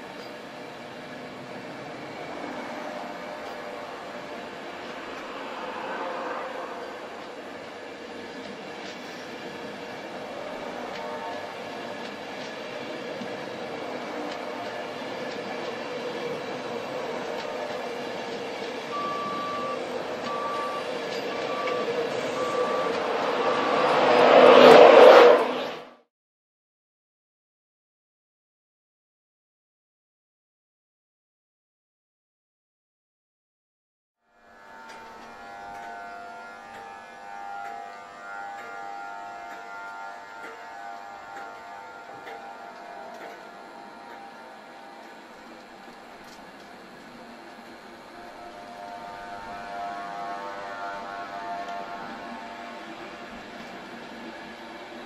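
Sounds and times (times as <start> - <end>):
train moving slowly: 0.0 - 26.0, 34.3 - 55.0
short beeps: 18.9 - 24.2.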